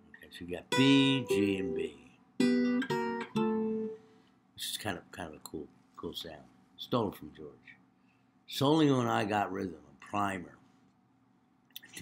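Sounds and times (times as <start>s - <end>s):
jazz guitar chords ringing: 0.7s - 4.0s.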